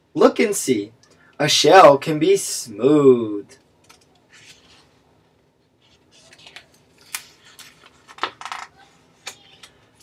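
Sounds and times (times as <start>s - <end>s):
book pages turning: 3.9s - 5.0s, 5.8s - 9.8s
paper rustles and taps: 6.3s - 9.8s.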